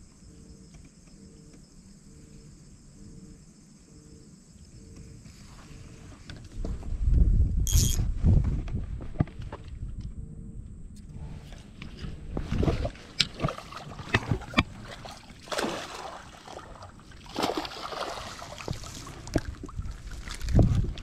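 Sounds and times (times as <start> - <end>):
faint insect buzz: 0.0 - 6.3.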